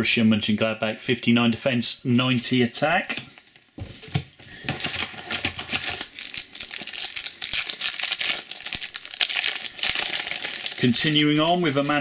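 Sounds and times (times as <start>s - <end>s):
foil wrapper crinkling and tearing: 4.7s - 12.0s.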